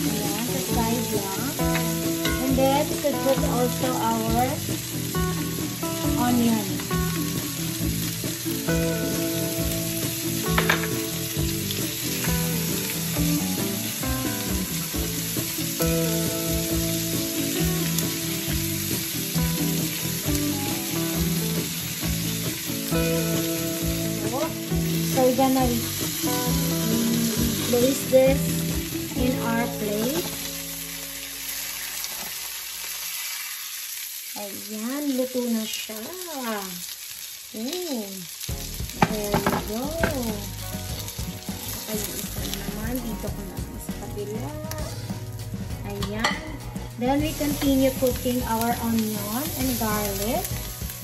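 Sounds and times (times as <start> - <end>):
background music with steady beat: 0.0 - 31.2, 38.5 - 51.0
fish and onion sizzling in oil: 0.0 - 51.0.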